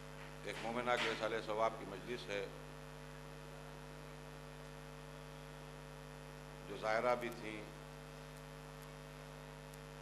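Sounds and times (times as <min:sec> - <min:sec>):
electrical mains hum: 0:00.0 - 0:10.0
man talking: 0:00.5 - 0:02.6, 0:06.7 - 0:07.8.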